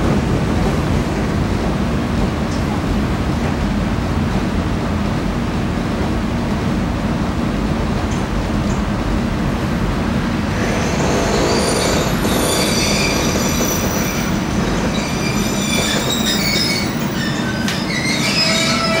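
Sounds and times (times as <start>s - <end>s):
train running rumble: 0.0s - 19.0s
wheel and brake squeals: 10.7s - 19.0s.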